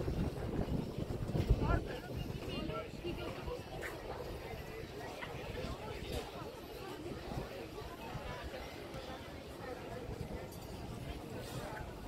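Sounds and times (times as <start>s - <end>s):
wind buffeting microphone: 0.0s - 6.3s
faint voices: 0.0s - 12.0s.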